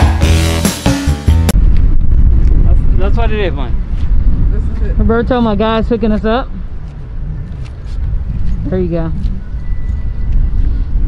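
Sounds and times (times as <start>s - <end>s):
music: 0.0s - 1.6s
wind buffeting microphone: 1.5s - 11.0s.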